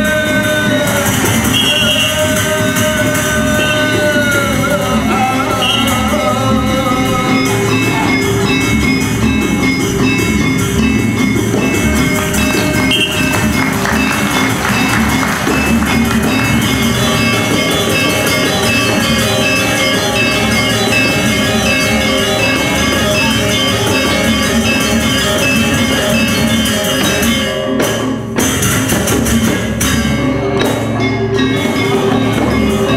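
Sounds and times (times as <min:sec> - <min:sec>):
double-headed drums: 0:00.0 - 0:32.9
metallophones playing: 0:00.0 - 0:32.9.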